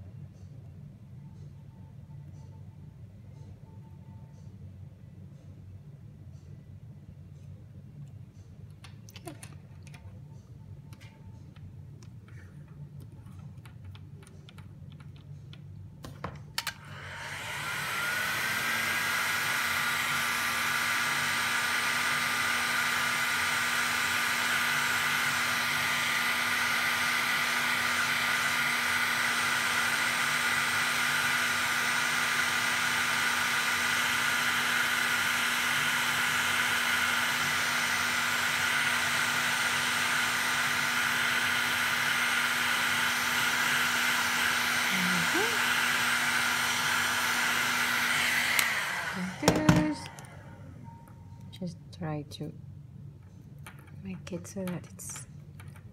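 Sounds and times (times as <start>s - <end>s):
heat gun blowing air: 16.8s - 50.7s.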